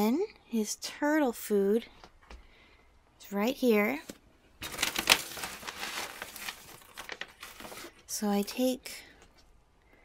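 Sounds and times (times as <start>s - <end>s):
plastic bag crinkling: 4.6s - 8.2s.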